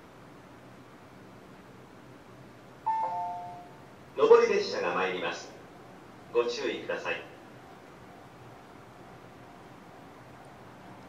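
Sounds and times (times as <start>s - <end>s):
two-note descending chime: 2.9s - 3.8s.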